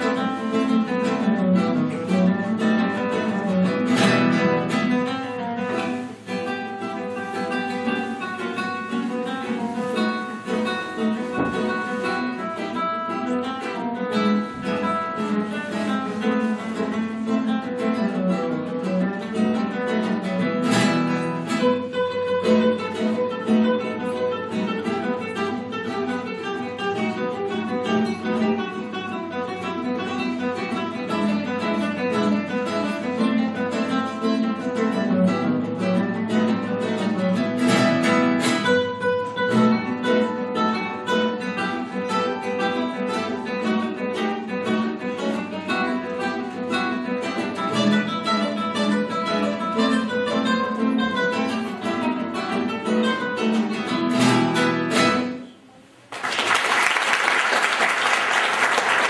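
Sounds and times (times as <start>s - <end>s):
acoustic guitar plucked notes: 0.0s - 56.1s.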